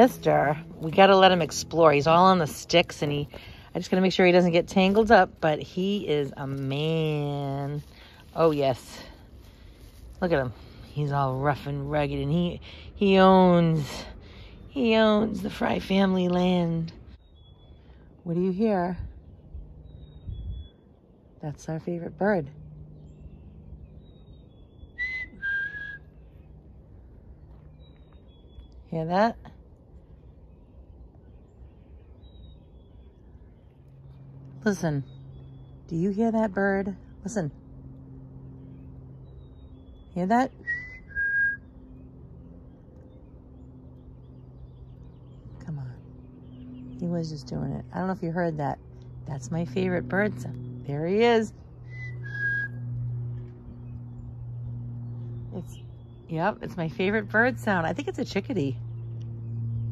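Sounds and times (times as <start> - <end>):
steady low hum: 0.0 - 59.9
person whistling: 25.0 - 26.0, 40.6 - 41.6, 52.0 - 52.7.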